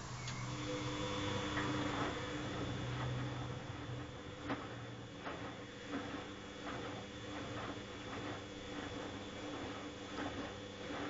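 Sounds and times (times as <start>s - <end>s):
washing machine motor hum: 0.0s - 11.0s.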